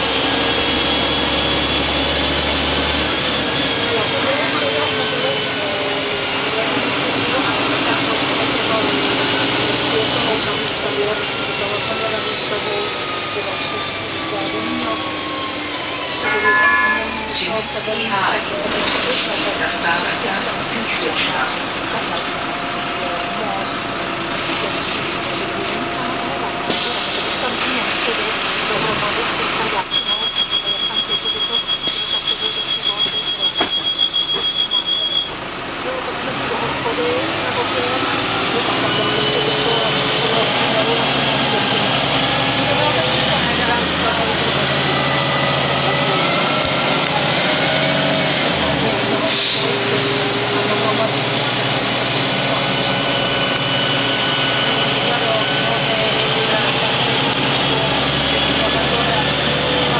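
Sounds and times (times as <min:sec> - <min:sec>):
bus diesel engine: 0:00.0 - 0:59.9
high two-note electronic tone: 0:16.2 - 0:17.8.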